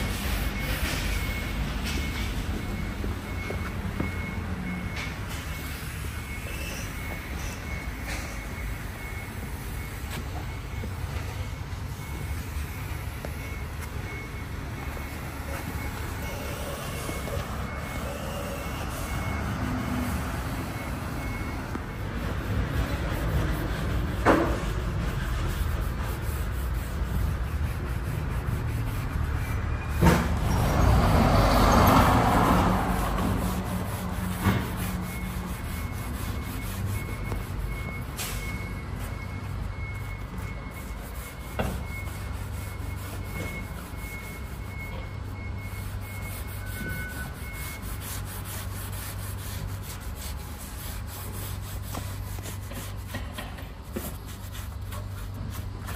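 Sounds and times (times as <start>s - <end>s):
faint high beep: 0.0s - 22.3s, 34.8s - 48.0s
vehicle engine rumbling: 0.0s - 55.9s.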